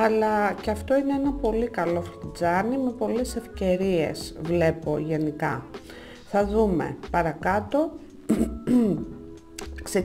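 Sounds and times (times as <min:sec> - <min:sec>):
soft background music: 0:00.0 - 0:10.0
woman making wordless sounds: 0:08.3 - 0:10.0.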